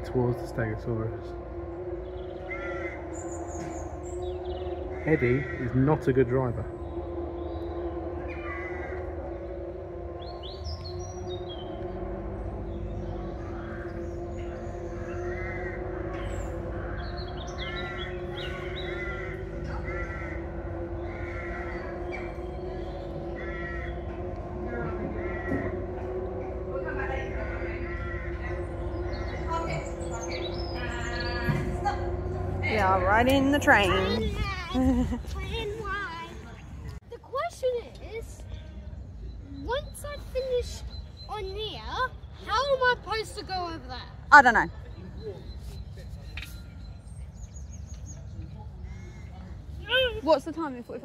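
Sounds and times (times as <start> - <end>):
steady hum: 0.0 - 37.0
crows cawing: 1.3 - 11.9, 12.6 - 34.2, 48.8 - 49.7.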